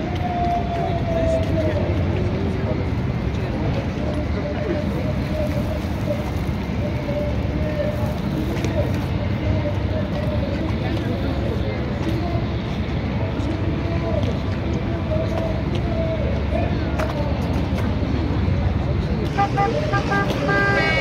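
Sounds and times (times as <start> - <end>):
chatter of many voices: 0.0 - 21.0
steady low rumble: 0.0 - 21.0.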